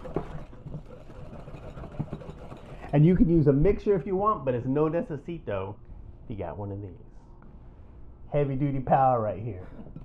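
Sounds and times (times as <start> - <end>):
wire whisk scraping glass bowl: 0.0 - 3.5.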